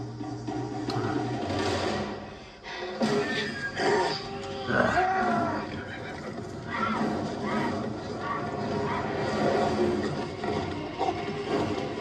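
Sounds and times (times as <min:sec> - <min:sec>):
tense orchestral score: 0:00.0 - 0:12.0.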